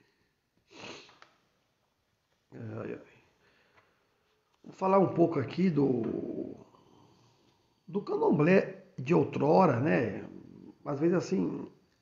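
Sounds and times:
nose sniff: 0:00.7 - 0:01.2.

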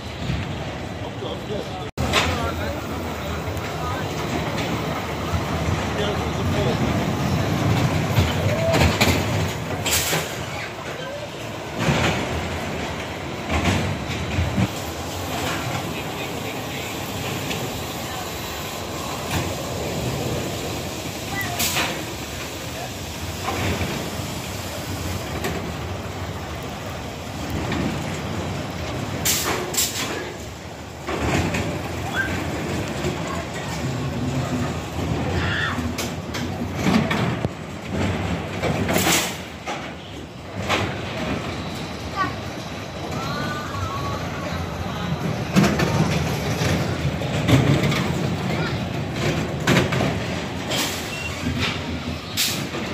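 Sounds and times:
roller coaster wheels rumbling on rail: 0:00.0 - 0:52.9.

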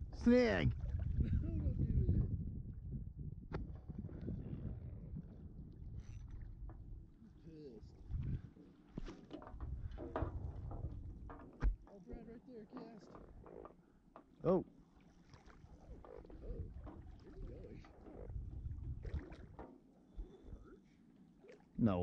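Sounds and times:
low rumble on microphone: 0:00.0 - 0:07.2, 0:07.8 - 0:08.5, 0:09.5 - 0:11.8, 0:15.8 - 0:20.7.

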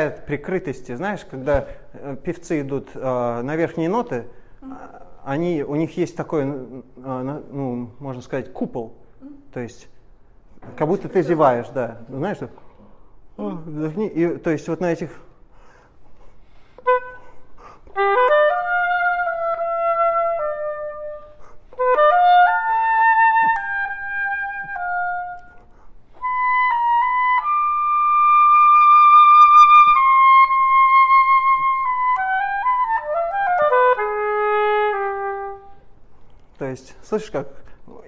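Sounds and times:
solo oboe playing: 0:16.8 - 0:36.0.

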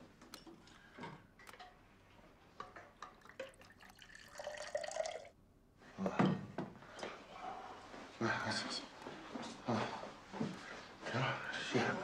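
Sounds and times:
water pouring into cup: 0:03.2 - 0:05.4.

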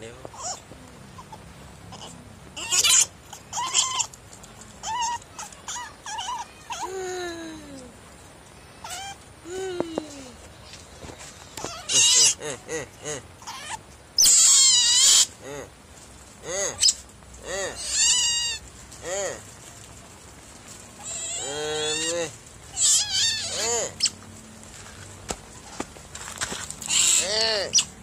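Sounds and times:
otter squeaking and chirping: 0:00.3 - 0:06.9, 0:11.6 - 0:12.4, 0:13.4 - 0:15.4, 0:16.8 - 0:17.1, 0:17.7 - 0:18.7, 0:21.0 - 0:24.2, 0:26.6 - 0:28.0
otter shrill squeal: 0:22.8 - 0:24.2.

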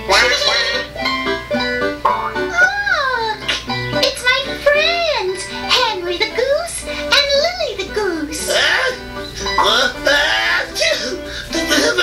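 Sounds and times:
cartoon background music: 0:00.0 - 0:12.0
animated character voices: 0:07.2 - 0:09.0, 0:09.6 - 0:12.0.

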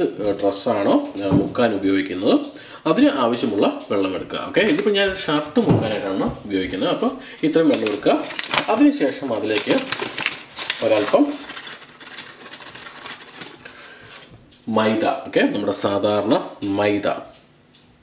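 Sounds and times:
person talking: 0:00.0 - 0:10.1, 0:10.7 - 0:11.4, 0:14.6 - 0:17.4.

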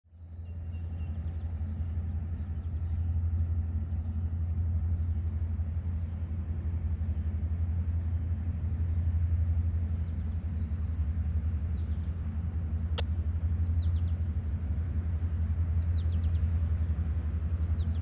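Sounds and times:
diesel engine rumbling: 0:00.1 - 0:18.0.

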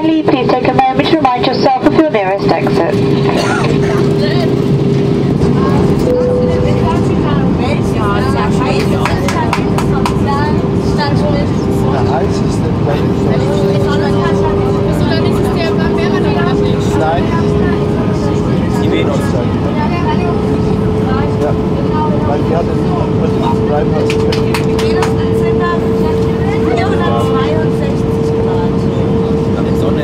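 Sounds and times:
airliner engine and airflow rumble: 0:00.0 - 0:30.0
faint passenger voices: 0:00.0 - 0:30.0
steady cabin hum: 0:00.0 - 0:30.0.

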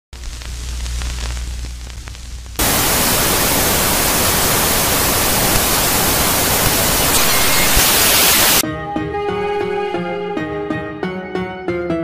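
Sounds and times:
low hum with faint crackles: 0:00.2 - 0:07.1
television static hiss: 0:00.2 - 0:08.6.

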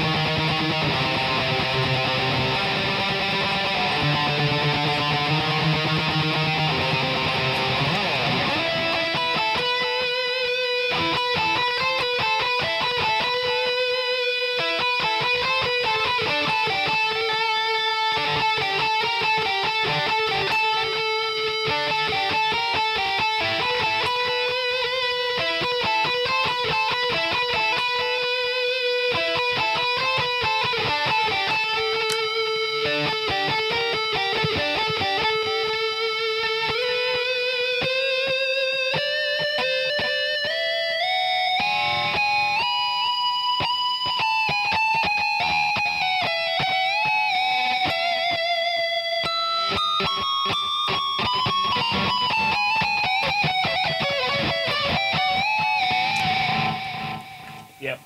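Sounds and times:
high-gain electric guitar lead: 0:00.0 - 0:58.0.

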